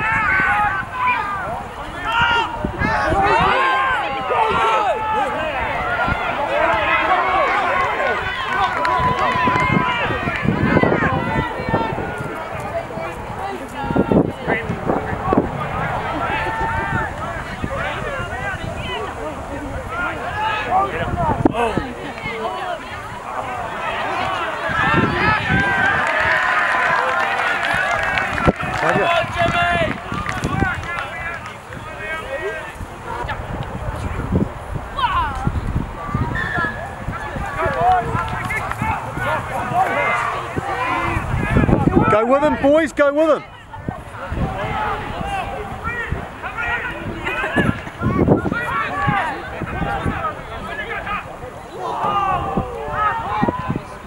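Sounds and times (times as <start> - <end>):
crowd shouting: 0.0 - 54.0.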